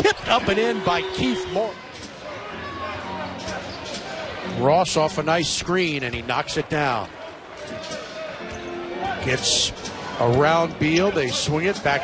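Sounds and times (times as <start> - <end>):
crowd noise: 0.0 - 12.0
on-court sounds: 0.0 - 12.0.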